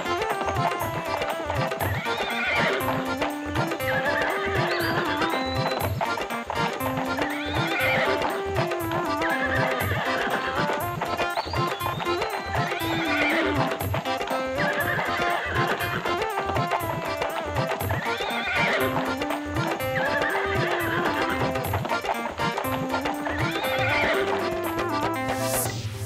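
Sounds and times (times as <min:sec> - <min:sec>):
horse hoofbeats clip-clopping: 0:00.0 - 0:25.2
background music: 0:00.0 - 0:26.0
horse neighing: 0:01.8 - 0:05.4, 0:07.0 - 0:10.8, 0:12.5 - 0:16.1, 0:17.9 - 0:21.7, 0:23.2 - 0:24.6.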